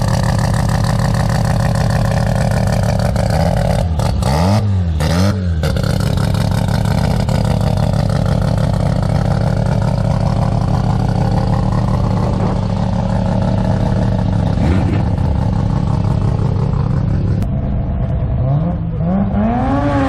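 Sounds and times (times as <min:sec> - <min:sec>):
buggy engine idling and revving: 0:00.0 - 0:20.0.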